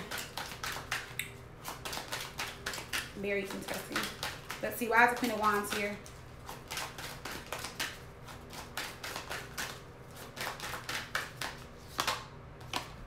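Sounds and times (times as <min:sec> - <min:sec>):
cards being shuffled: 0:00.0 - 0:13.0.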